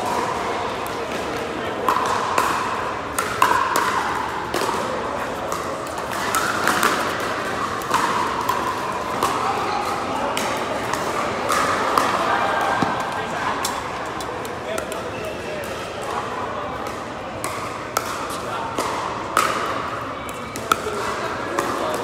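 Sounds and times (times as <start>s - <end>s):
players' voices echoing: 0.0s - 22.0s.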